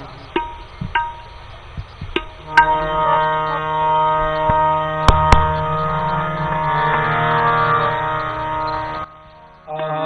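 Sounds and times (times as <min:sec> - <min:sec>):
sharp knocks: 0:00.4 - 0:02.8, 0:04.5 - 0:05.8
harmonium chords: 0:02.1 - 0:10.0.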